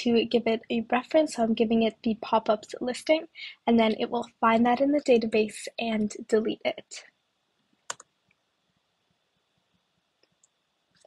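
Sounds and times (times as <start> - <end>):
computer mouse click: 7.9 - 8.1.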